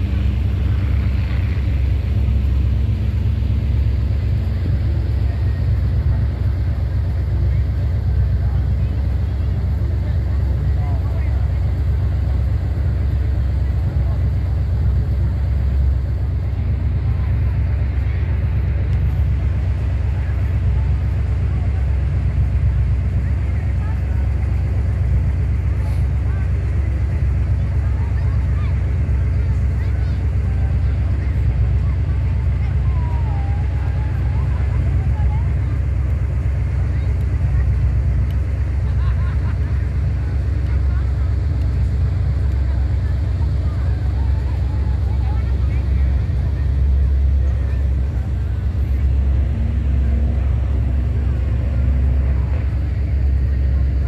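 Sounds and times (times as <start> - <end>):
low rumble: 0.0 - 54.0
people talking faintly: 0.0 - 54.0.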